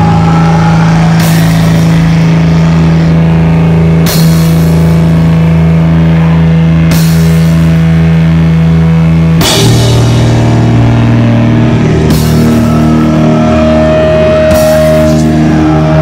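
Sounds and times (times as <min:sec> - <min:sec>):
bass guitar: 0:00.0 - 0:16.0
distorted electric guitar chords: 0:00.0 - 0:16.0
drums: 0:00.0 - 0:16.0
cymbal crashes: 0:09.4 - 0:16.0.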